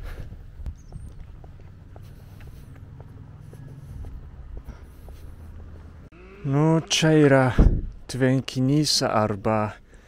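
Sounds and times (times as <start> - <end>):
footsteps walking: 0.0 - 6.1.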